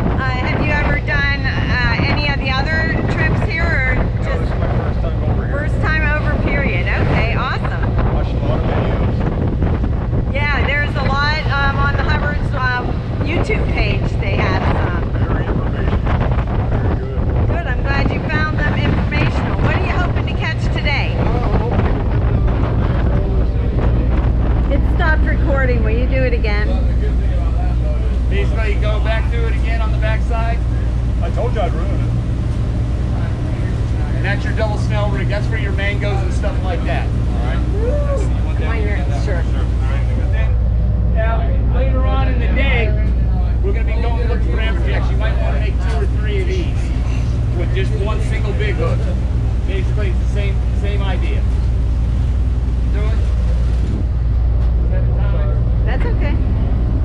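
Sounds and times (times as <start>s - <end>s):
voices: 0.0s - 9.5s, 10.3s - 57.0s
boat engines droning: 0.0s - 57.0s
water rushing along hull: 0.0s - 57.0s
wind buffeting microphone: 0.0s - 57.0s.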